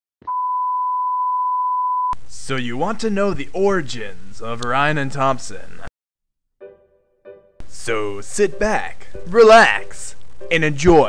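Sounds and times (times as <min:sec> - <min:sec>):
steady electronic beep: 0:00.3 - 0:02.2.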